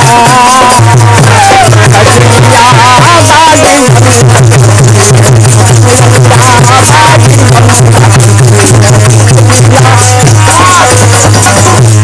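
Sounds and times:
frame drum: 0:00.0 - 0:12.0
hand drum beating fast rhythm: 0:00.0 - 0:12.0
harmonium: 0:00.0 - 0:12.0.

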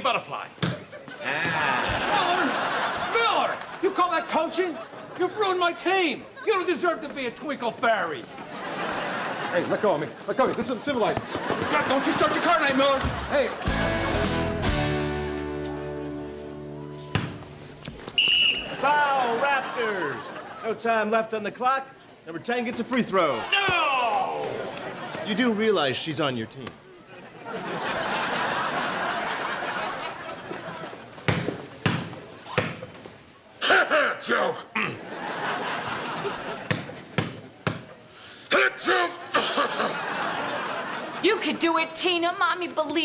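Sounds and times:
referee's whistle blast: 0:18.2 - 0:18.8
basketball bouncing on gym floor: 0:31.3 - 0:32.9, 0:36.7 - 0:37.9.

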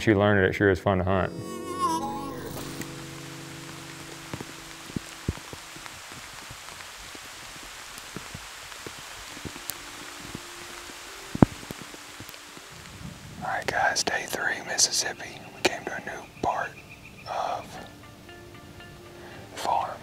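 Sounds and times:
rain falling: 0:02.3 - 0:18.3.

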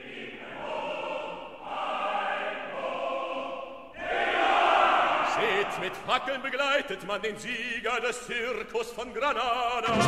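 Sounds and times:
opera chorus singing: 0:00.0 - 0:10.0
orchestra: 0:09.2 - 0:10.0.

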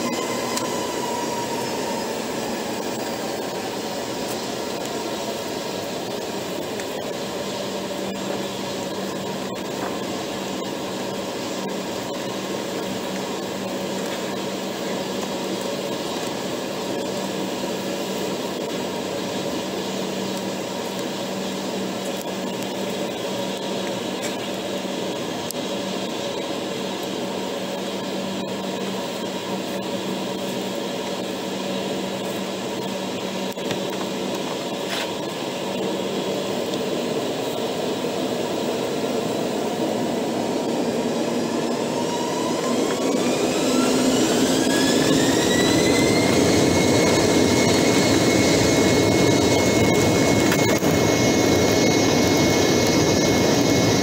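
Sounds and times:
jet engines whining in cabin: 0:00.0 - 0:54.0.

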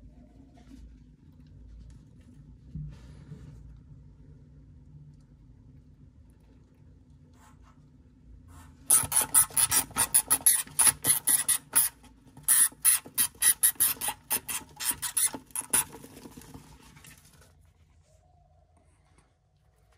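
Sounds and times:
hamster gnawing on metal spout: 0:08.9 - 0:16.4.

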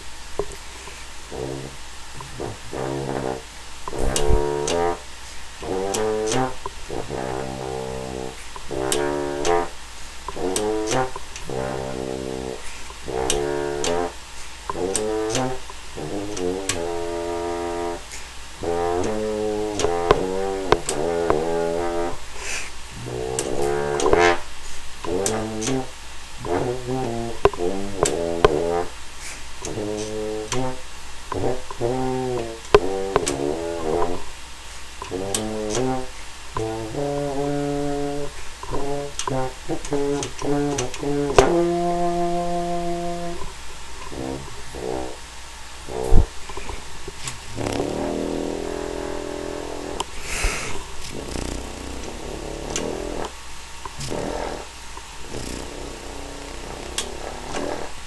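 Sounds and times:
french horn playing held notes: 0:01.3 - 0:22.3, 0:23.0 - 0:29.0, 0:29.6 - 0:34.4, 0:35.1 - 0:46.7, 0:47.5 - 0:53.3, 0:54.0 - 0:54.7, 0:55.3 - 0:58.0.

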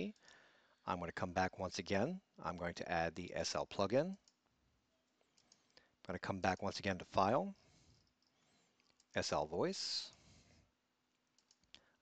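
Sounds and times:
computer mouse clicks: 0:11.3 - 0:11.9.

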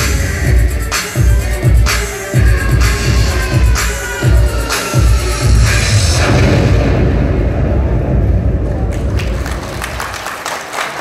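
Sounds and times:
electronic dance music: 0:00.0 - 0:07.7
audience applause: 0:08.8 - 0:11.0.

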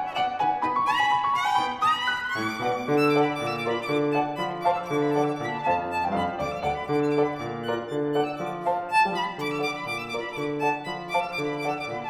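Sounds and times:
piano playing: 0:00.0 - 0:12.0
violin playing: 0:00.0 - 0:12.0.

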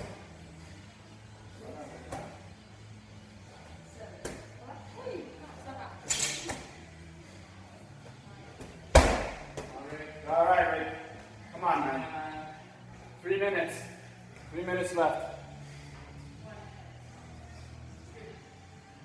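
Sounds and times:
medicine ball thudding: 0:08.6 - 0:09.8.

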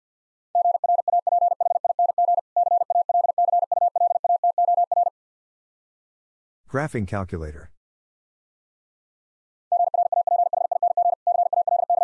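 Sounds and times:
morse code beeps: 0:00.6 - 0:05.1, 0:09.7 - 0:12.0.

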